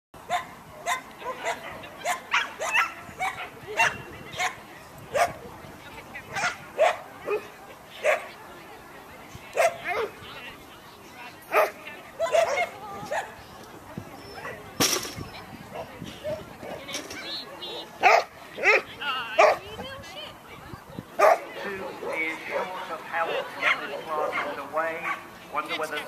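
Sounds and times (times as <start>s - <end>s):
dog barking: 0.3s - 5.4s, 6.3s - 8.3s, 11.5s - 13.2s, 17.7s - 18.8s, 19.4s - 19.6s, 21.2s - 21.4s.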